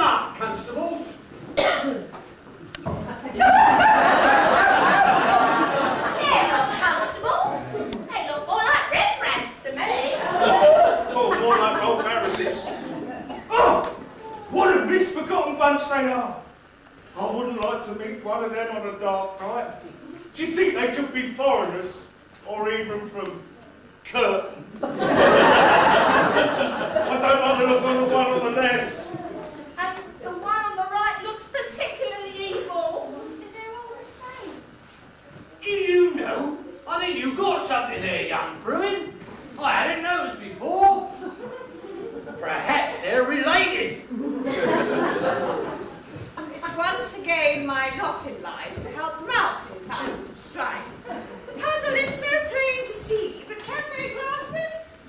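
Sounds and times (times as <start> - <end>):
short cough: 1.6 - 2.1
audience laughter: 3.1 - 7.9, 10.0 - 13.3, 24.8 - 29.6, 44.1 - 46.6.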